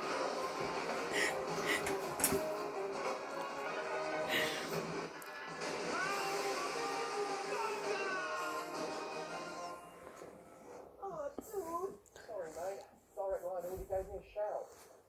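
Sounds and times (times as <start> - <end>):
television music: 0.0 - 15.0
television voices: 0.0 - 15.0.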